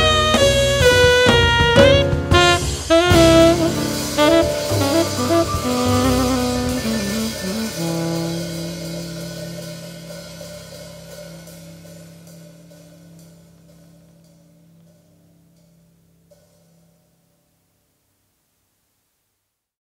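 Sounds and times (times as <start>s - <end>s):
jazz quartet final chord: 0.0s - 13.3s
cymbal wash: 2.7s - 17.8s.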